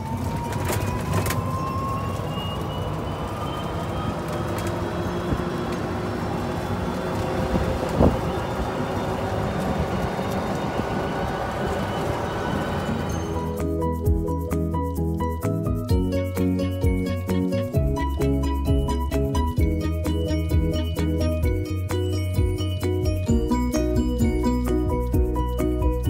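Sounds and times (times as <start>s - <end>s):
thin motor whine: 0.0s - 13.6s
golf cart motor and tyres: 0.0s - 26.0s.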